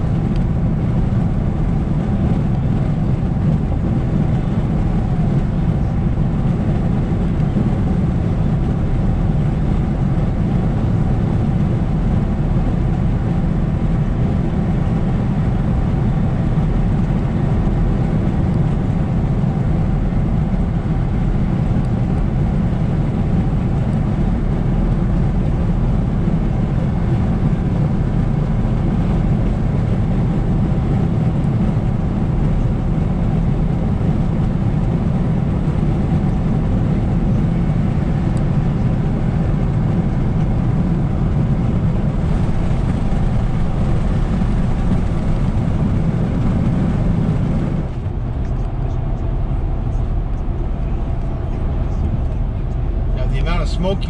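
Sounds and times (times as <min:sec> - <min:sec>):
car cabin road noise: 0:00.0 - 0:54.0.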